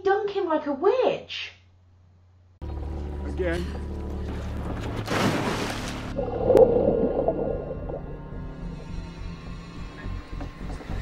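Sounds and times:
water splash: 0:04.8 - 0:08.1
muffled underwater bubbling: 0:06.1 - 0:08.3.

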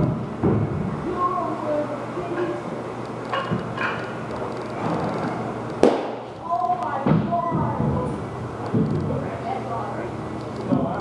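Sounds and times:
large room background din: 0:00.0 - 0:11.0
sharp crack: 0:05.7 - 0:07.2.

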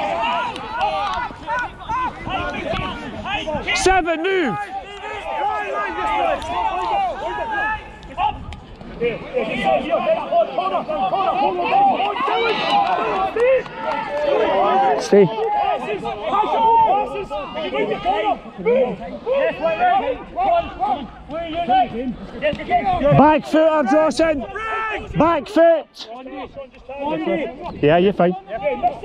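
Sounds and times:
crowd shouting: 0:00.0 - 0:29.0.

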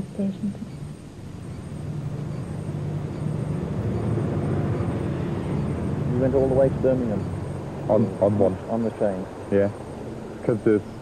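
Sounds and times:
diesel train engine hum: 0:00.0 - 0:11.0.

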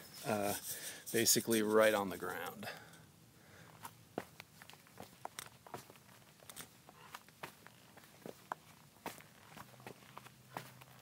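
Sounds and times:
footsteps on dry mulch and leaves: 0:04.2 - 0:11.0.

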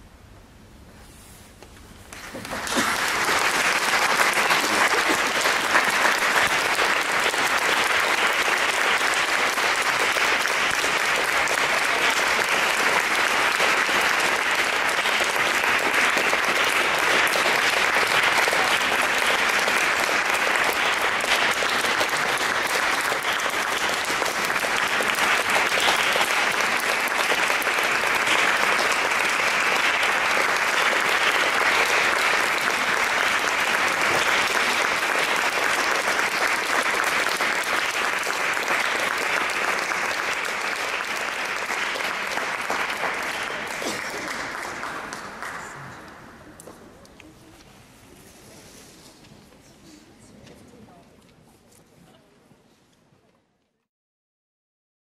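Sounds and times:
audience applauding: 0:02.1 - 0:46.7.

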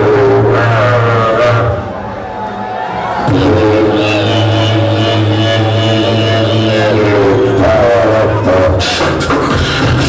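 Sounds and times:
beatboxer's vocal bass drone: 0:00.0 - 0:01.8, 0:03.2 - 0:10.0.

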